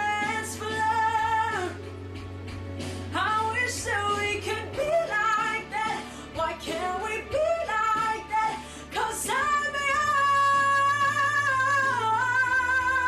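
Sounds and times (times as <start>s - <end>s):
young man singing a pop ballad: 0.0s - 1.8s, 3.1s - 13.0s.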